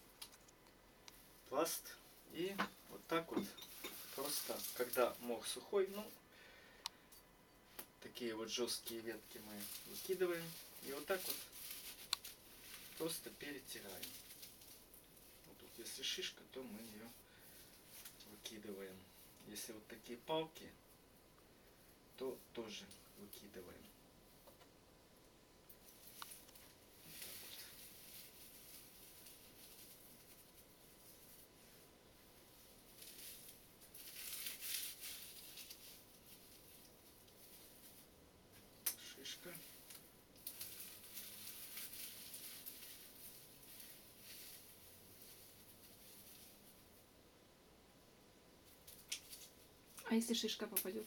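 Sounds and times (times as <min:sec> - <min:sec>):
dry moss crackling rustle: 0:00.0 - 0:07.0, 0:07.6 - 0:24.4, 0:25.6 - 0:47.4, 0:48.5 - 0:51.0.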